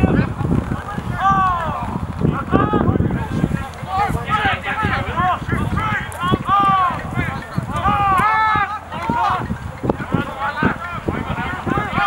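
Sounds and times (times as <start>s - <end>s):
men shouting: 0.0s - 12.0s.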